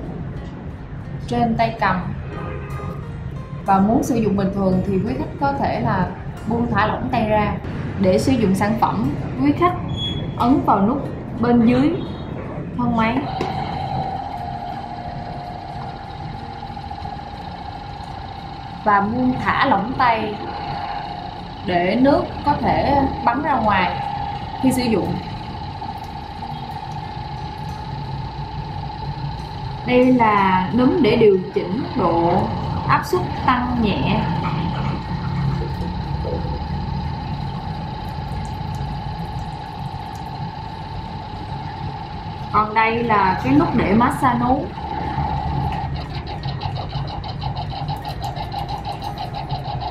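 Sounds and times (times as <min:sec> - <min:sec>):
water flosser pump humming: 0:00.0 - 0:49.9.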